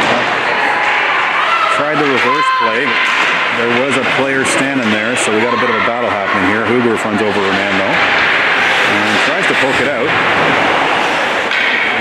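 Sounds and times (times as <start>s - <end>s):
ice hockey game noise: 0.0s - 12.0s.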